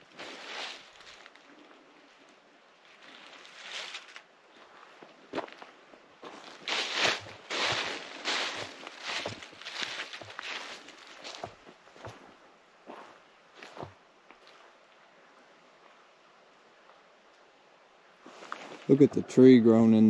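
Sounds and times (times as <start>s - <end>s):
footsteps crunching dry leaves: 0.0s - 1.5s, 2.8s - 12.3s.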